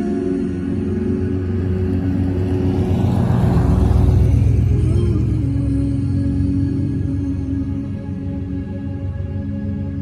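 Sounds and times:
music playing: 0.0 - 10.0
car driving past: 0.7 - 7.3.

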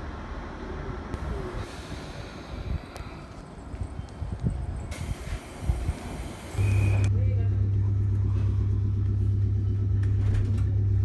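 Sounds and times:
electric train low hum: 0.0 - 11.0
hiss: 1.2 - 3.1, 4.9 - 7.0.

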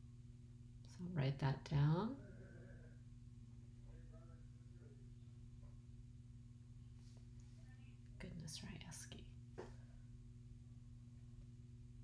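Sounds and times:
faint low hum: 0.0 - 12.0
woman whispering: 7.6 - 9.4.

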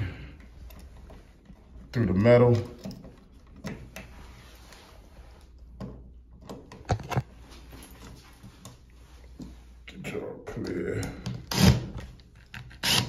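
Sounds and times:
clicks and knocks from handling tools: 0.4 - 4.2.

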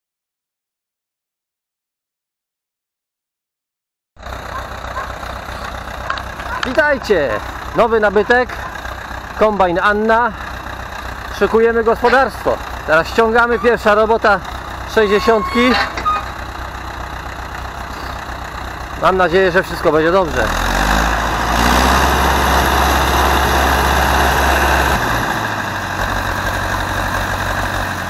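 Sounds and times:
tractor diesel engine running: 4.2 - 28.0.

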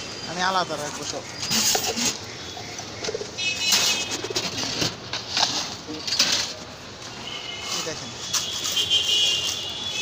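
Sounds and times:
pigeons cooing: 1.4 - 3.4, 4.0 - 5.0.

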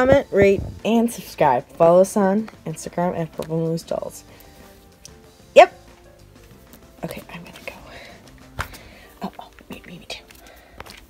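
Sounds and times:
person whispering: 9.2 - 10.3.

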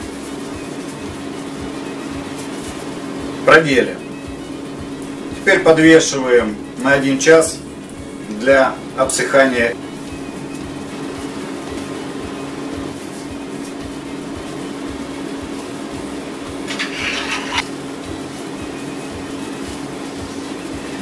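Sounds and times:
quiet background music: 0.0 - 21.0
steady low hum and hiss: 0.0 - 21.0.

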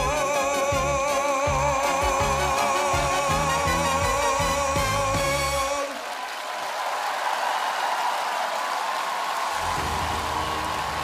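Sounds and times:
man singing with band: 0.0 - 6.0
audience applause: 3.6 - 11.0.

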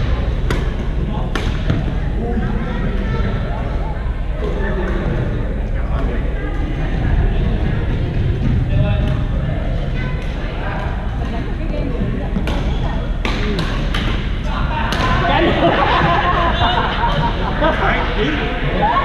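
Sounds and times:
people talking: 0.0 - 19.0
rackets hitting shuttlecock: 0.4 - 1.8, 12.4 - 15.2.

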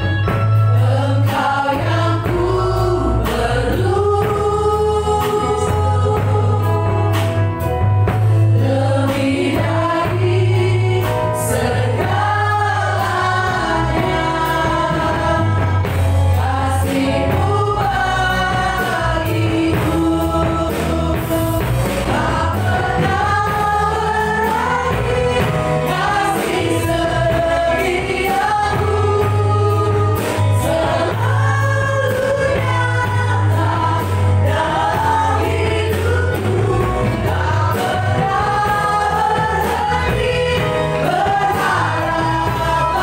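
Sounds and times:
drums: 0.0 - 43.0
electric guitar: 0.0 - 43.0
group singing worship song: 0.0 - 43.0
keyboard: 0.0 - 43.0.

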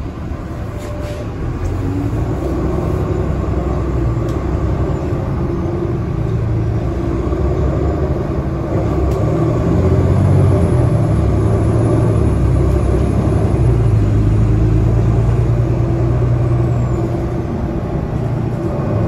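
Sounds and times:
bus engine hum: 0.0 - 19.0
road rumble: 0.0 - 19.0.

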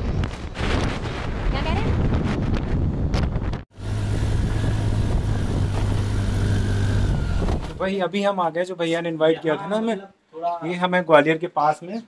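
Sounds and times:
road and wind noise: 0.0 - 7.8
low engine drone: 3.7 - 7.8.

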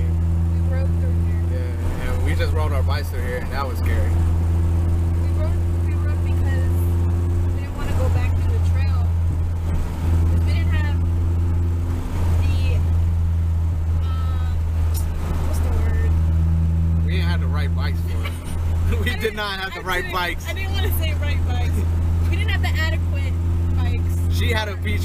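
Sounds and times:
car interior engine and road drone: 0.0 - 25.0.

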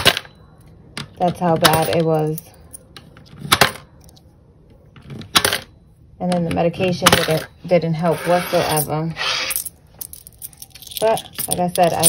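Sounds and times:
coins scraping and rattling: 6.8 - 12.0.

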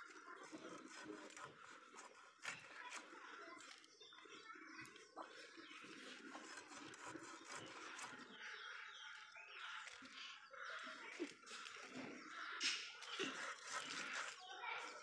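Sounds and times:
fish cutting on a blade: 0.4 - 3.8, 6.1 - 8.3, 12.6 - 15.0.

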